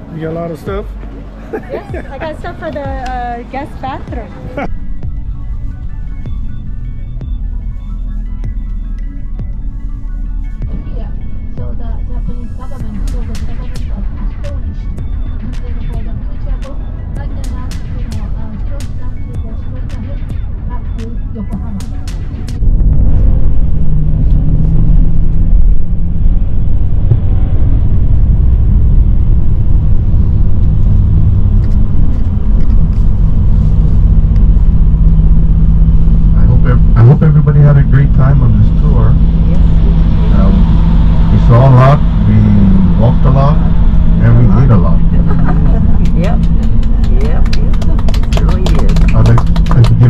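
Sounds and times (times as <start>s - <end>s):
voices: 0.0s - 4.7s, 10.8s - 22.6s, 36.4s - 50.0s
bus engine drone: 0.0s - 50.0s
road noise: 0.0s - 50.0s.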